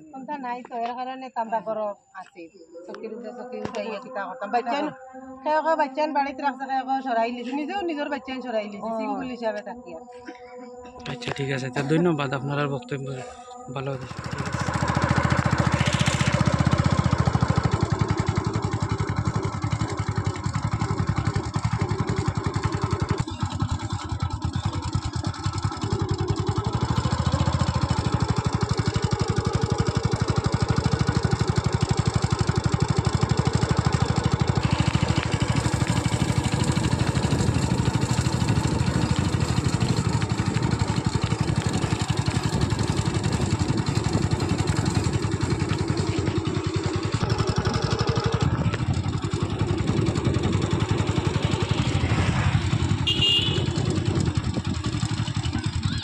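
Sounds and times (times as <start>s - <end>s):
vehicle engine and road noise: 9.5s - 56.0s.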